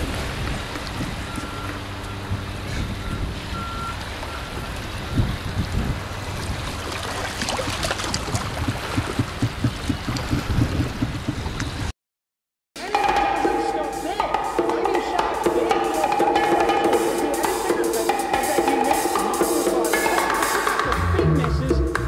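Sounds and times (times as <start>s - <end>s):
water washing against rocks: 0.0s - 1.8s, 5.3s - 11.7s
low engine hum: 0.0s - 11.9s
faint high beeps: 3.0s - 5.2s
crackles and knocks: 7.9s - 11.8s.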